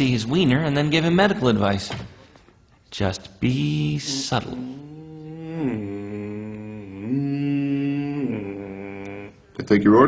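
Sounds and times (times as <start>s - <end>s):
man humming a slow tune: 3.5s - 9.6s.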